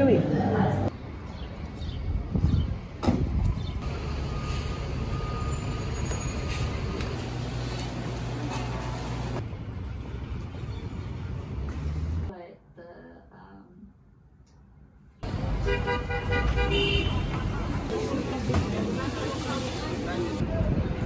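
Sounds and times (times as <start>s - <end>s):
street traffic rumble: 0.0s - 12.4s, 14.7s - 21.0s.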